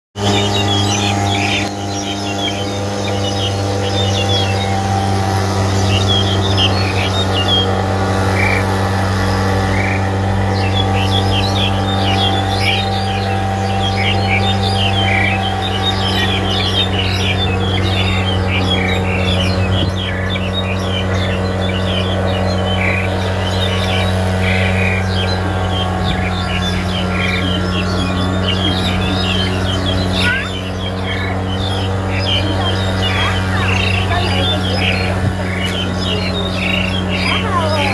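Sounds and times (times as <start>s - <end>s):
starling singing chirps and chatter: 0.2s - 37.9s
steady low hum: 0.2s - 37.9s.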